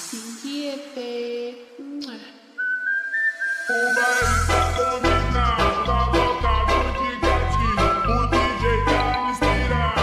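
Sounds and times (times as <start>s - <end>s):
high whistle-like melody: 2.6s - 9.8s.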